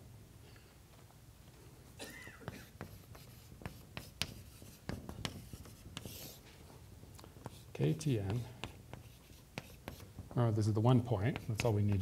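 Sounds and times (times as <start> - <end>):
chalk tapping and scratching: 2.4 - 12.0.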